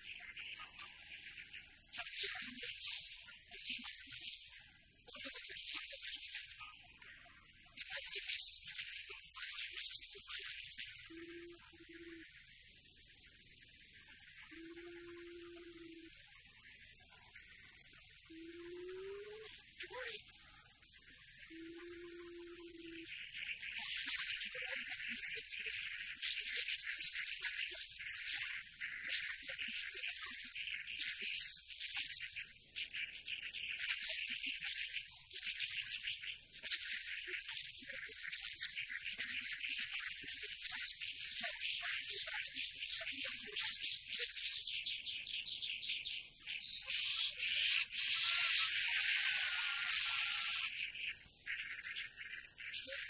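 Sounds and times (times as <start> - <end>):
small birds chirping and twittering: 0.0 - 53.0
high buzzy cartoon chittering: 46.9 - 52.3.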